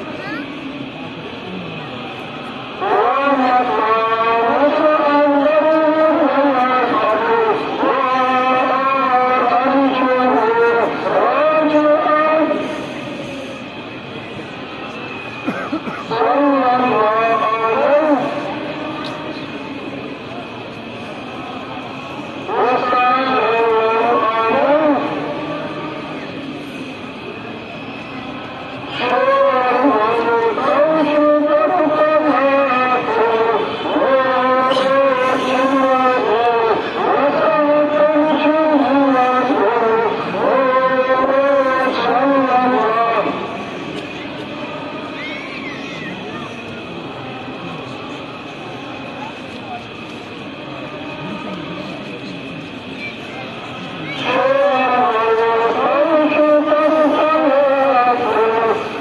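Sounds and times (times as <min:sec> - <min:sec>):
crowd hubbub: 0:00.0 - 0:59.0
faint voices: 0:00.0 - 0:59.0
man chanting melodically: 0:01.3 - 0:13.4, 0:16.0 - 0:20.4, 0:21.2 - 0:26.5, 0:28.0 - 0:50.1, 0:50.7 - 0:59.0
quiet talk: 0:32.0 - 0:59.0.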